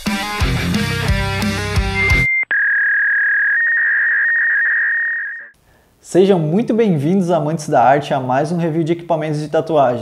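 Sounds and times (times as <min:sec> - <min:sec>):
heavy electric guitar music: 0:00.0 - 0:02.3
steady high electronic tone: 0:01.8 - 0:05.5.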